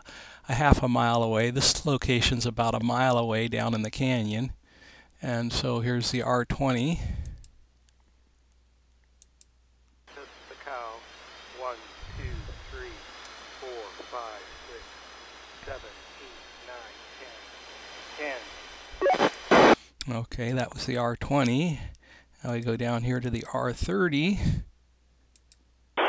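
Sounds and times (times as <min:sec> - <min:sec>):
man's voice over radio scanner: 0:10.1 - 0:14.9, 0:15.6 - 0:17.5
radio hiss: 0:10.1 - 0:19.8
loud short radio burst: 0:19.0 - 0:19.8.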